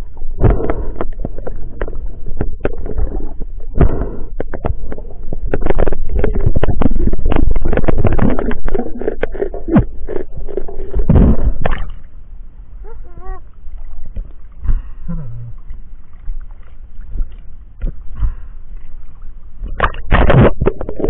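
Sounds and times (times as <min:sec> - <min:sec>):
muffled underwater rumble: 0:00.0 - 0:21.0.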